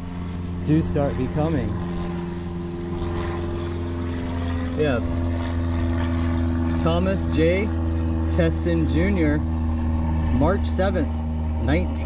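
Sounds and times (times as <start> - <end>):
engine droning steadily: 0.0 - 12.0.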